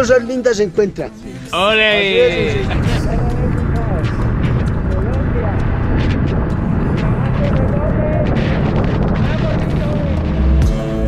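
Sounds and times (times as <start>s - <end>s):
man talking: 0.0s - 3.8s
wind roar on microphone: 2.3s - 10.6s.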